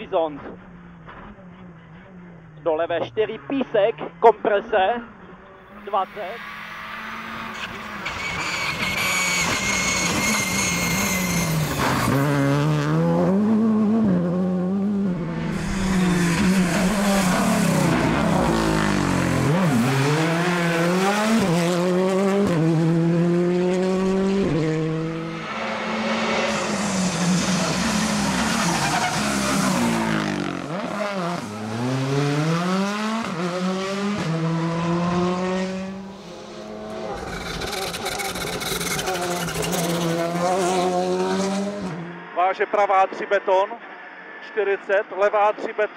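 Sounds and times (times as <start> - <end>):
rally cars accelerating past: 5.2 - 42.4.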